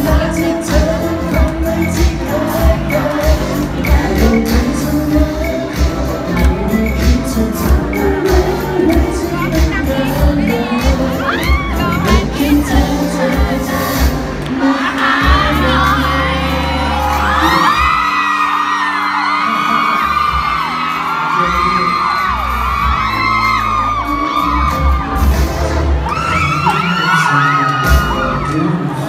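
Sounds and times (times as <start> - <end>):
amplified backing track: 0.0 - 29.0
crowd shrieking and cheering: 0.0 - 29.0
man singing pop song through pa: 0.0 - 29.0.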